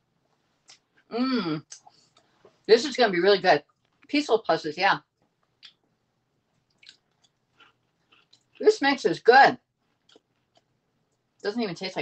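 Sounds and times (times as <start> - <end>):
person chewing crisp food: 6.6 - 8.6, 9.9 - 11.3.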